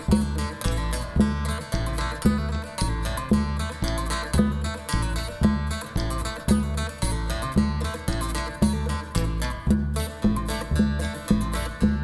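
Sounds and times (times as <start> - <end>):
hand drum thumps: 0.0 - 12.0
strummed acoustic guitar: 0.0 - 12.0
upright double bass: 0.0 - 12.0.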